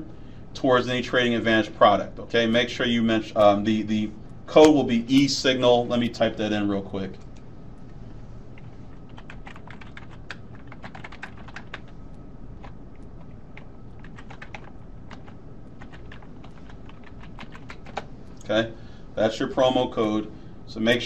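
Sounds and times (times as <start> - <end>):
steady low hum: 0.0 - 21.0
keyboard typing: 8.6 - 12.0, 12.6 - 18.1.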